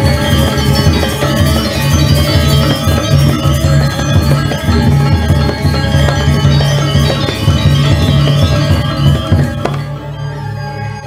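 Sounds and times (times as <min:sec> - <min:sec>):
gamelan ensemble playing: 0:00.0 - 0:11.0.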